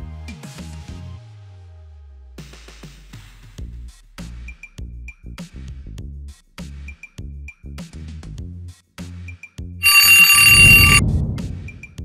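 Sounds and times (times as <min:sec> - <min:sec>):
alarm clock bell ringing: 0:09.8 - 0:11.0.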